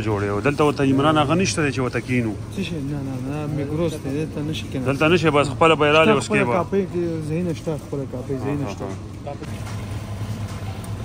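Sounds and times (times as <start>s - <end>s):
coffee machine motor hum: 0.0s - 11.0s.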